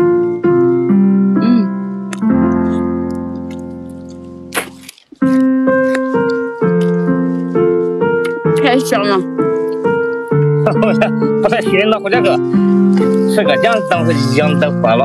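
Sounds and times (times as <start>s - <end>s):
slow piano music: 0.0s - 15.0s.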